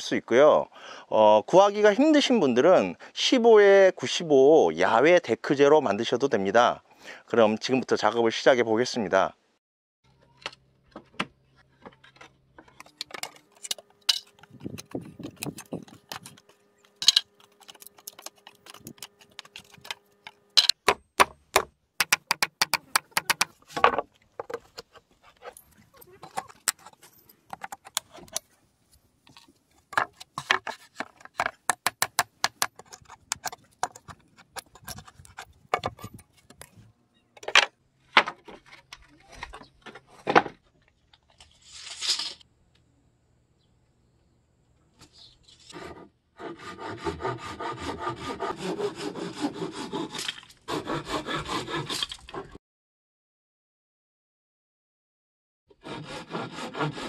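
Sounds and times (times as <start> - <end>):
scraping strokes on wood: 12.8 - 20.8, 22.0 - 28.5, 29.3 - 36.9, 45.5 - 52.6, 55.8 - 57.0.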